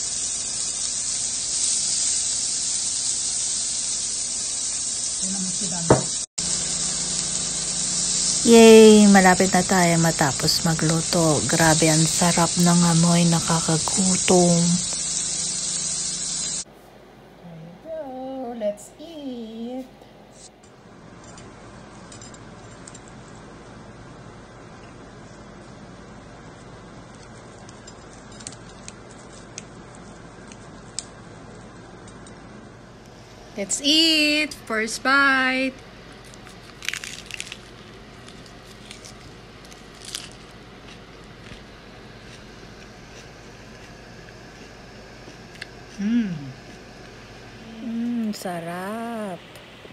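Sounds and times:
food sizzling on a grill: 0:00.0 - 0:16.7
crisp crunching bites: 0:36.2 - 0:44.0
chewing: 0:36.2 - 0:46.0.

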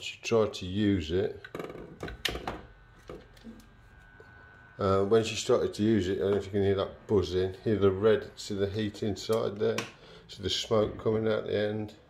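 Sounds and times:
hair dryer buzzing: 0:02.0 - 0:10.0.

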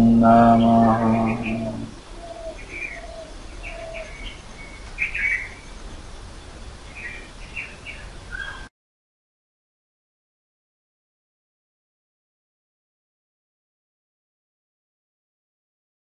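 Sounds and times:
man chanting: 0:00.0 - 0:02.0
low drone: 0:00.0 - 0:02.6
short low bird calls: 0:00.0 - 0:05.6
bird chirps: 0:00.0 - 0:06.0, 0:06.8 - 0:08.7.

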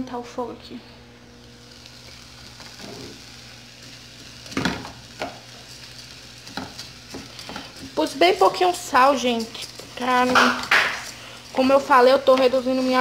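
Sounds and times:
rice sizzling in pot: 0:01.2 - 0:13.0.

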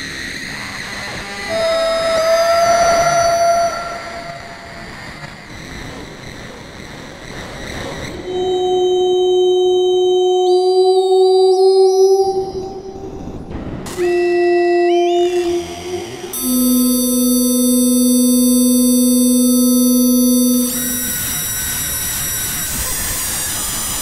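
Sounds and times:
modular synthesizer held notes: 0:00.8 - 0:05.3, 0:08.1 - 0:24.0.

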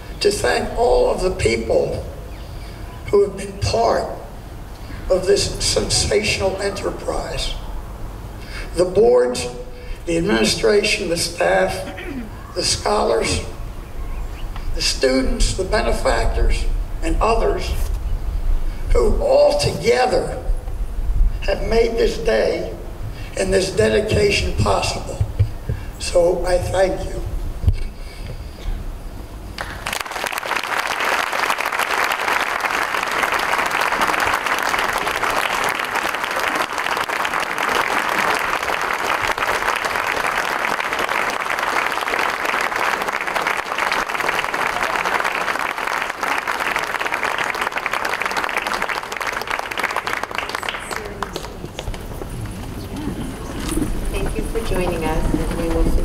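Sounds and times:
large crowd applauding: 0:29.6 - 0:52.7.

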